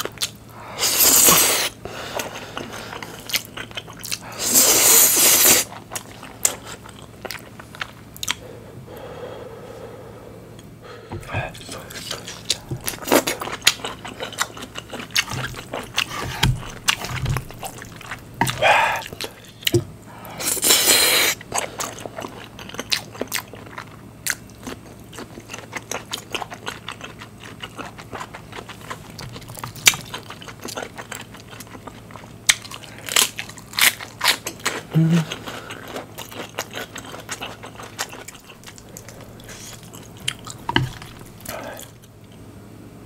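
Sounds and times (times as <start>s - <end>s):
wet chewing: 1.2s - 8.5s, 11.2s - 42.2s.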